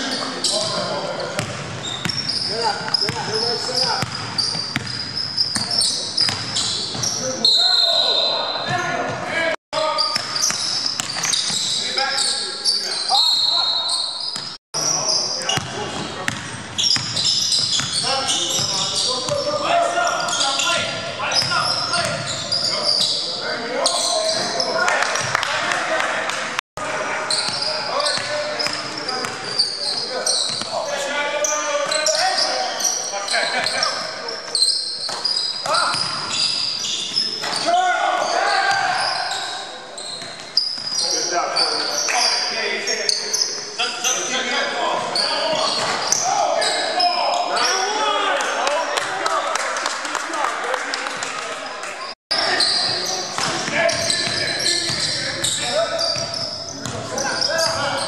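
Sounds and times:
sneakers squeaking: 0:00.0 - 0:25.4, 0:27.2 - 0:48.0, 0:52.0 - 0:58.0
players calling out: 0:00.0 - 0:49.4, 0:52.0 - 0:58.0
basketball bouncing: 0:01.4 - 0:07.2, 0:10.1 - 0:11.7, 0:15.6 - 0:18.0.

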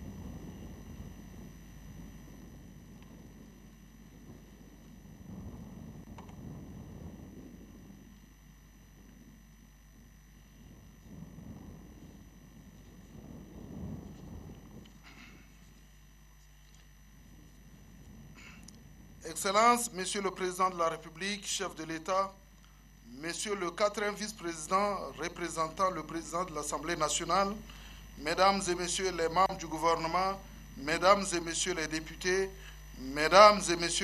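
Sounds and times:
faint low rumble: 0:00.0 - 0:34.0
steady electrical hum: 0:00.0 - 0:34.0
faint ticks: 0:18.4 - 0:18.8, 0:22.6 - 0:22.8.

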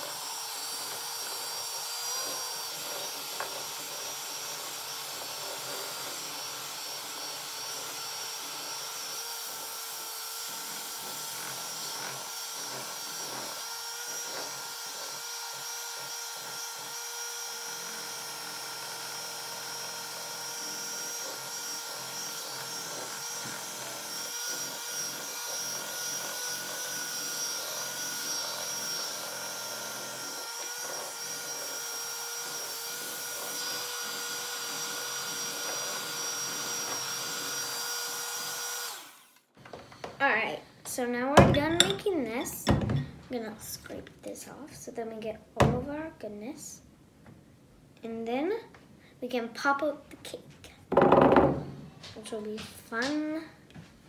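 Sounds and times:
electric hand mixer whine: 0:00.0 - 0:40.1, 0:50.9 - 0:51.6.

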